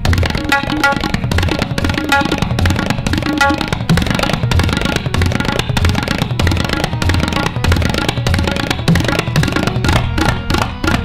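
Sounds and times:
harmonium sustained accompaniment: 0.0 - 11.0
tabla strokes: 0.0 - 11.0.

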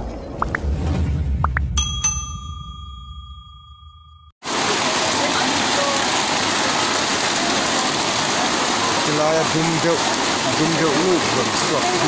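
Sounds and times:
notification bell ding: 1.8 - 4.3
heavy rain: 4.4 - 12.0.

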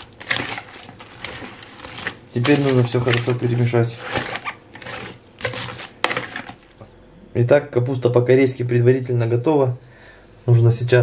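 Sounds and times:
utensil stirring in glass bowl: 0.0 - 6.8.

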